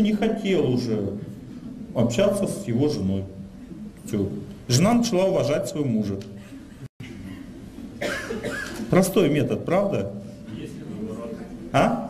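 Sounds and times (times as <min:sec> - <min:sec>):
faint room hiss: 0:00.0 - 0:12.0
person coughing: 0:08.0 - 0:08.9.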